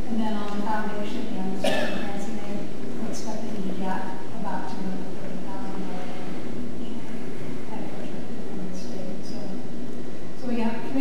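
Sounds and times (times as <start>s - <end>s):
room noise hiss and hum: 0.0s - 11.0s
indistinct speech: 0.1s - 9.6s.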